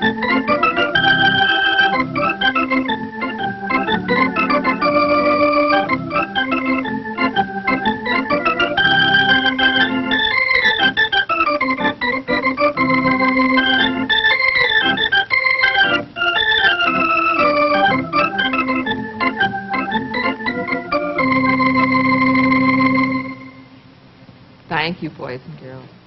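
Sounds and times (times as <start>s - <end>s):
organ playing lively melody: 0.0s - 23.8s.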